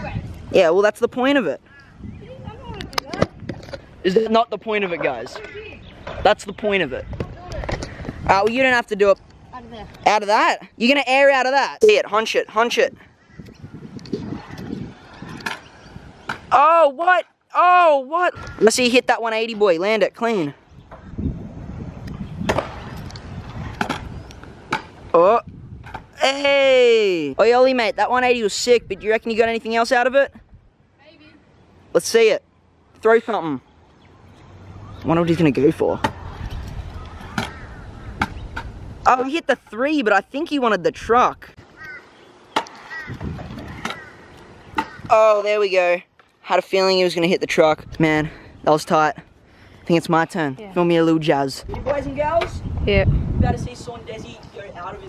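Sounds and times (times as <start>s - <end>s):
scooter wheels rolling on concrete: 2.2s - 11.4s, 13.8s - 16.6s, 22.1s - 28.7s, 41.7s - 47.6s, 51.6s - 55.0s.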